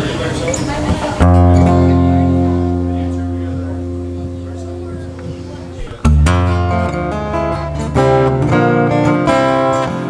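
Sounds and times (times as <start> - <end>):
acoustic guitar chord ringing: 0.3 - 10.0.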